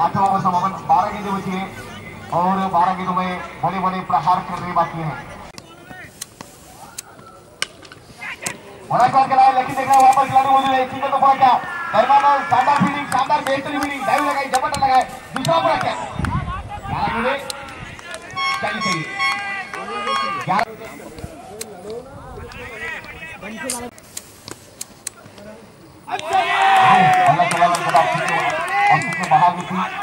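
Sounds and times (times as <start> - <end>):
faint voices: 0.0 - 30.0.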